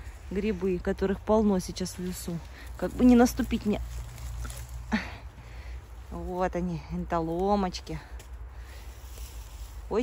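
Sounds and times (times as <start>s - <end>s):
dry leaves rustling: 0.0s - 10.0s.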